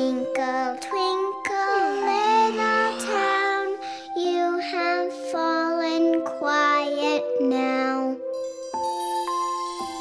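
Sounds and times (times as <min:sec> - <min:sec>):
child singing: 0:00.0 - 0:08.4
soft music: 0:00.0 - 0:10.0.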